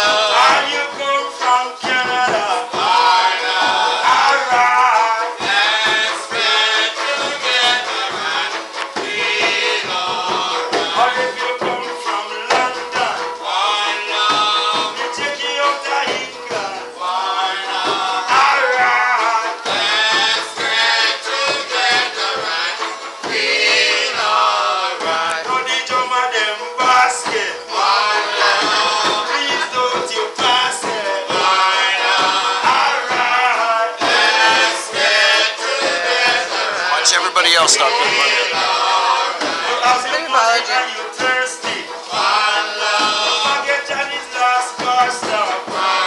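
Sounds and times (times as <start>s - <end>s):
man singing into microphone: 0.0s - 8.2s, 36.6s - 38.5s
hand drums: 0.0s - 35.2s
acoustic guitar: 0.0s - 46.0s
strummed banjo: 0.0s - 46.0s.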